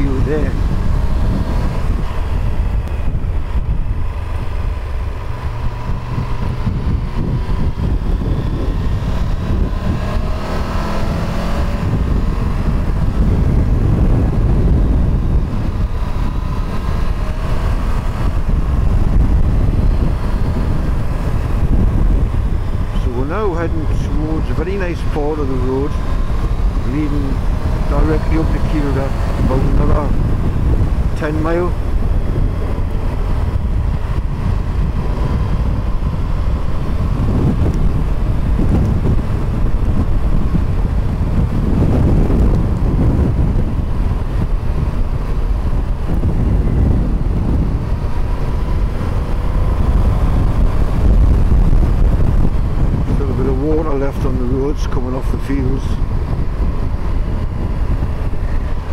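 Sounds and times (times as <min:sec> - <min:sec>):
motorcycle engine: 0:00.0 - 0:58.9
wind buffeting microphone: 0:00.0 - 0:58.9.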